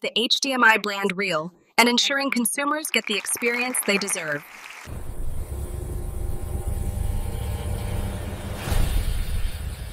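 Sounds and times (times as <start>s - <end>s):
deep rumbling drone: 4.9s - 9.9s.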